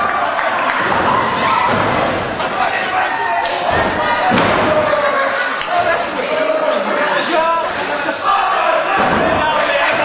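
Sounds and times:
people shouting: 0:00.0 - 0:10.0
heavy thuds in wrestling ring: 0:08.9 - 0:09.6.

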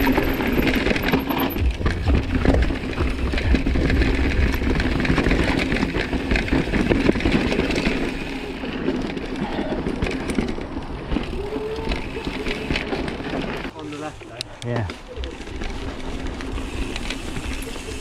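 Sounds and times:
tyres crunching over loose stones: 0:00.0 - 0:13.7, 0:14.6 - 0:18.0
wind rumbling on microphone: 0:00.0 - 0:13.7
bike rattling and knocking: 0:00.0 - 0:13.9, 0:14.6 - 0:18.0.

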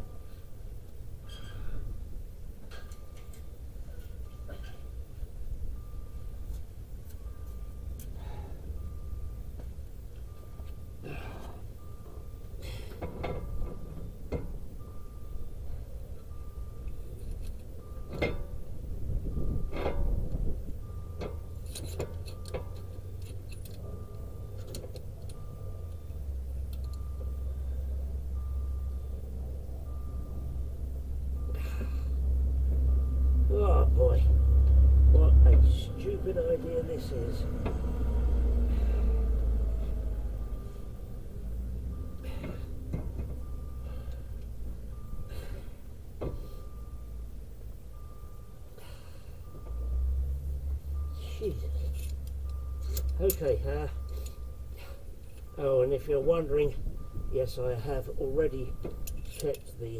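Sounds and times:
car warning beep: 0:00.0 - 0:59.9
low hum: 0:00.0 - 0:59.9
metal tools clinking: 0:01.2 - 0:01.8, 0:21.2 - 0:26.0, 0:51.2 - 0:54.5, 0:57.5 - 0:59.9.

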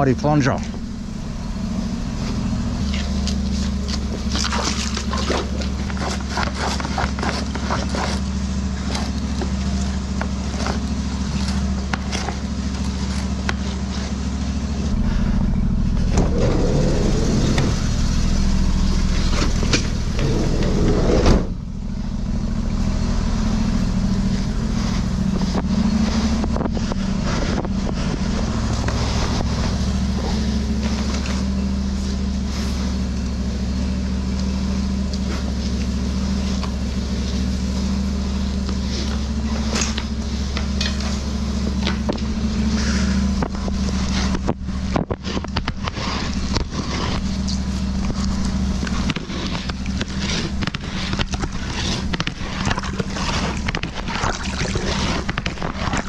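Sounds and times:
drain jetter engine humming: 0:00.0 - 0:56.0.

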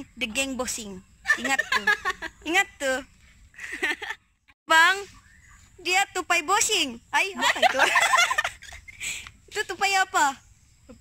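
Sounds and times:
young women laughing: 0:01.2 - 0:02.5, 0:03.6 - 0:04.2, 0:07.4 - 0:09.2.

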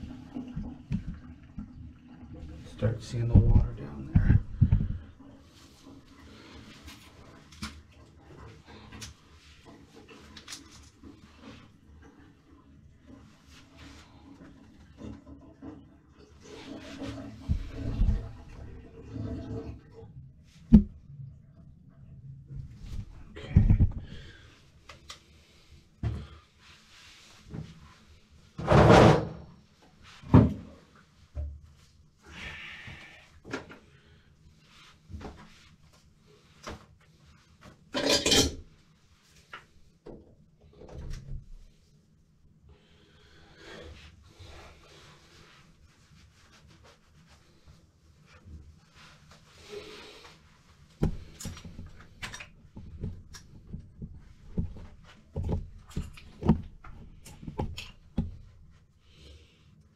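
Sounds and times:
objects knocking and clattering: 0:03.4 - 0:05.1.

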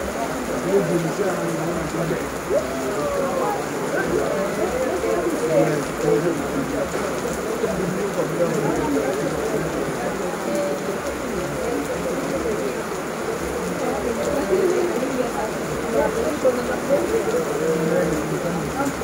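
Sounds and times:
heavy rain on paving and grass: 0:00.0 - 0:19.0.

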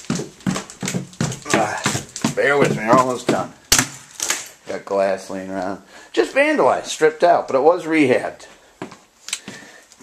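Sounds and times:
quick footsteps down stairs: 0:00.0 - 0:04.8, 0:08.5 - 0:10.0.

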